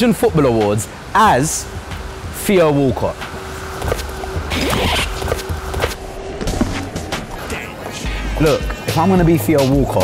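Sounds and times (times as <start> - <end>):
background music with a beat: 1.7 - 2.4, 3.2 - 10.0.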